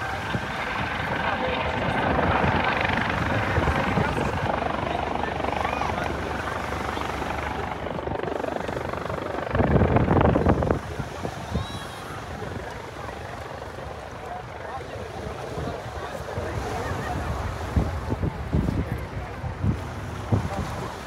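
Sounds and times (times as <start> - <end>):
helicopter rotor and turbine: 0.0 - 21.0.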